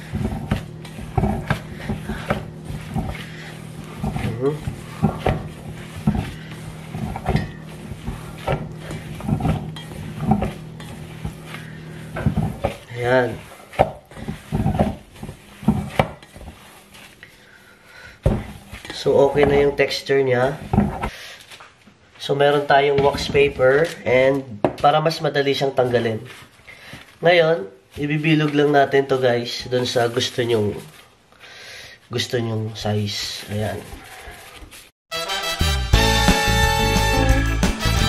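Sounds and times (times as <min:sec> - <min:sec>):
hands squishing cake dough: 0:00.0 - 0:31.1.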